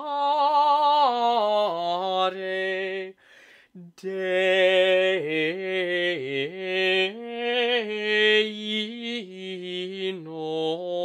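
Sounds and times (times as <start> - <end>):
man singing chant: 0.0 - 3.2, 3.8 - 11.0.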